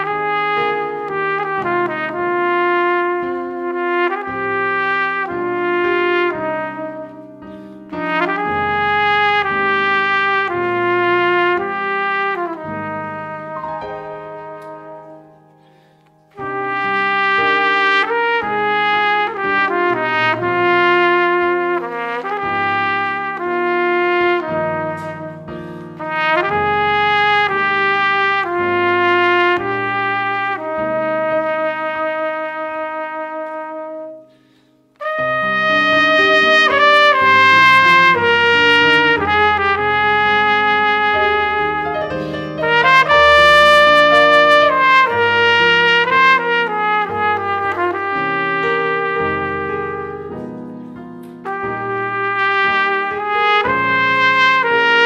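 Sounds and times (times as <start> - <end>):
digital piano accompaniment: 0.0 - 55.0
trumpet playing slow melody: 0.0 - 55.0.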